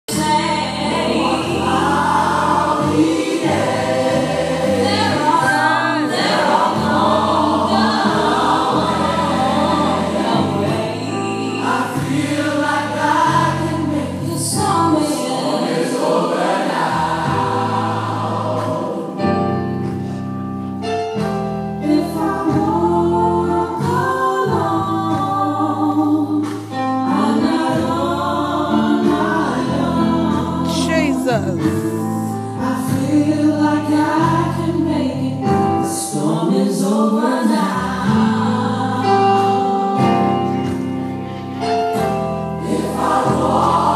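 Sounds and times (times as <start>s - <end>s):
gospel choir singing: 0.1s - 43.9s
instrumental backing with bass: 0.1s - 43.9s.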